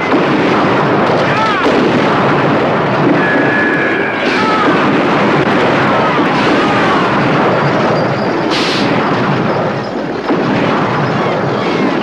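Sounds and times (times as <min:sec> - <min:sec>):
sampled gunfire and explosions: 0:00.0 - 0:12.0.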